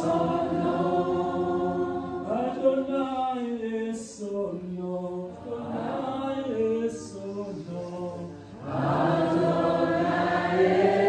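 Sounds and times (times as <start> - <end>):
congregation singing: 0.0 - 11.0.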